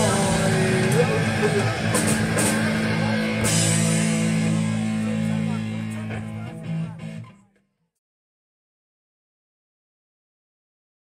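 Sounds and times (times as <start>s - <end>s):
electric guitar chord ringing: 0.0s - 7.3s.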